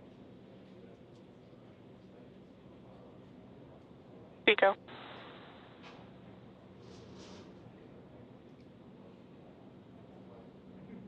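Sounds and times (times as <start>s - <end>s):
person calling out over radio: 4.5s - 4.8s
radio hiss: 4.5s - 5.7s.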